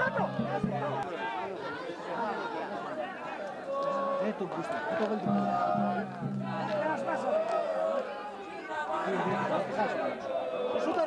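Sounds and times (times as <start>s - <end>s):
crowd voices talking and calling: 0.0s - 11.0s.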